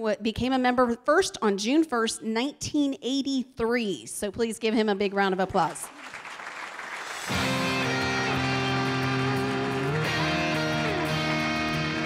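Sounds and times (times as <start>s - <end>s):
audience applause: 5.7s - 12.0s
music with held chord: 7.3s - 12.0s.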